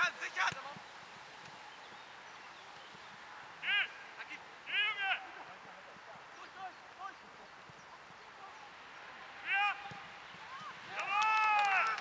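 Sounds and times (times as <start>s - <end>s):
players shouting: 3.5s - 5.5s, 8.4s - 12.0s.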